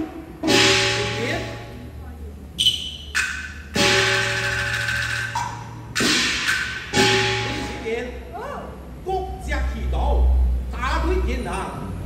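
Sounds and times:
cymbal and gong crash: 0:00.4 - 0:01.6, 0:03.7 - 0:07.9.

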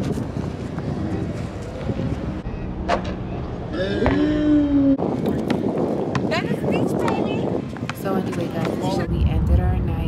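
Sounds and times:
people's voices: 0:06.2 - 0:10.0.

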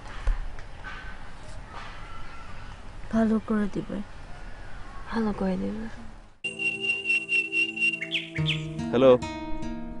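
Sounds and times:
bird chirps: 0:06.4 - 0:08.8
sustained music notes: 0:06.4 - 0:10.0
bird trilling: 0:06.5 - 0:08.8.

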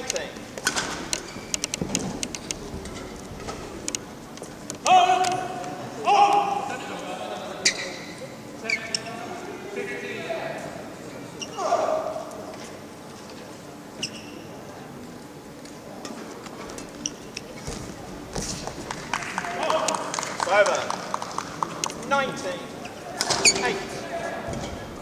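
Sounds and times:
short shoe squeaks: 0:07.6 - 0:09.1, 0:14.0 - 0:14.6, 0:23.3 - 0:23.8.

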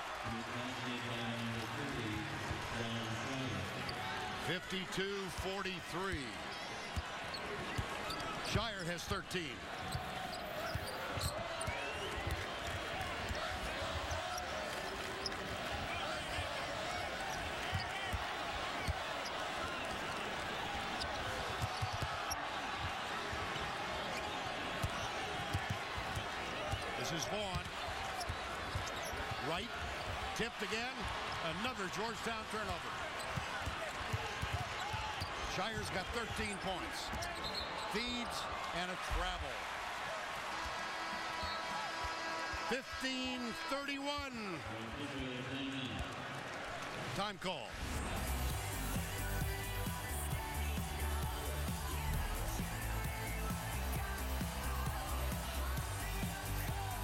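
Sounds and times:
arena crowd noise: 0:00.0 - 0:57.0
sneaker squeaks: 0:09.8 - 0:12.3, 0:37.1 - 0:38.0.

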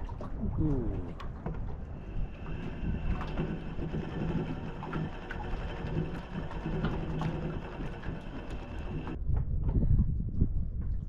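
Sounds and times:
low rumble: 0:00.0 - 0:11.0
handling clicks and ticks: 0:01.2 - 0:09.2
fishing reel cranking: 0:02.1 - 0:09.2.

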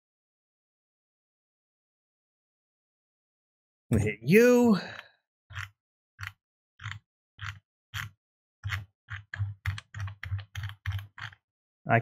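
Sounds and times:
computer keyboard key presses: 0:08.7 - 0:11.4.

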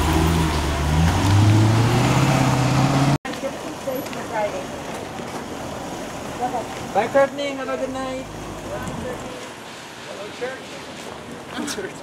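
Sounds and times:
suv engine accelerating: 0:00.0 - 0:03.2.

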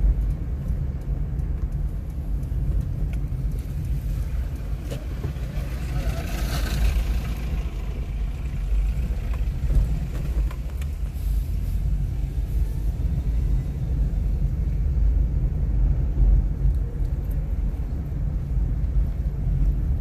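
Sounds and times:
car engine and tyres rumbling: 0:00.0 - 0:20.0
hiss: 0:11.0 - 0:12.8.

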